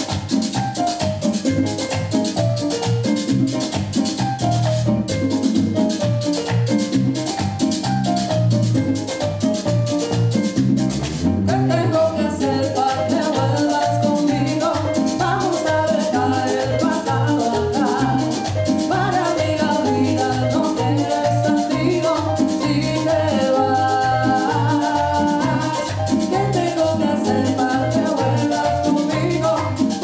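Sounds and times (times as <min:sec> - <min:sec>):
fast percussion beat: 0:00.0 - 0:30.0
latin band playing merengue: 0:00.0 - 0:30.0.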